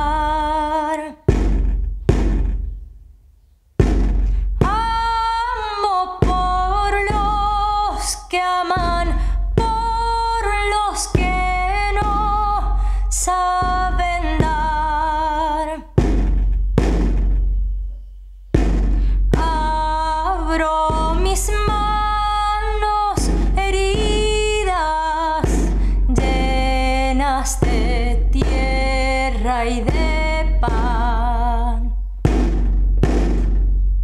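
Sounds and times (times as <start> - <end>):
deep drum strokes: 1.2 - 3.2, 3.8 - 34.0.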